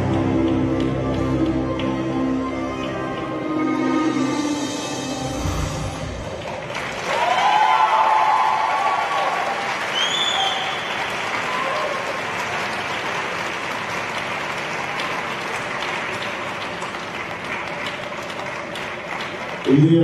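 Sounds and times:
audience applauding: 0.0 - 3.6, 6.0 - 20.0.

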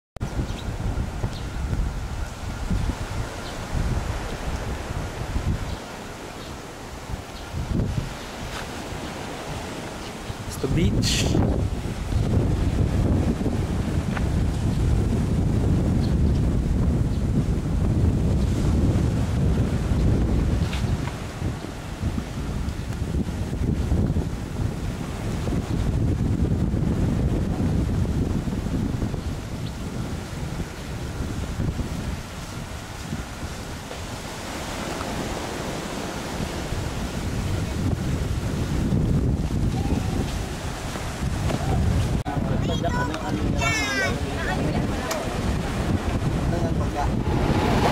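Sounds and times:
wind buffeting microphone: 0.2 - 47.9
surf breaking on shore: 0.3 - 47.9.

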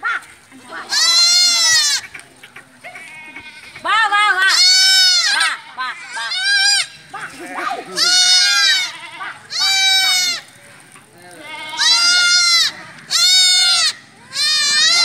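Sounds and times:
goats bleating: 0.5 - 15.0.

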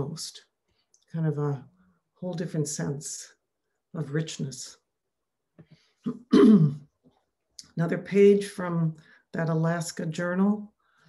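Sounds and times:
woman clearing her throat: 6.1 - 6.9.

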